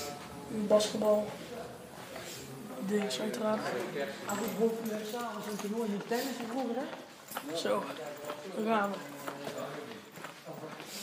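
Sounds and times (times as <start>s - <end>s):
footsteps on hard floor: 4.6s - 10.9s.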